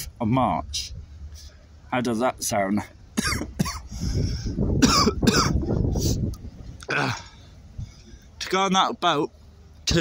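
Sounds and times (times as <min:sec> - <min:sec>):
man coughing: 0:03.2 - 0:03.9, 0:04.8 - 0:05.6.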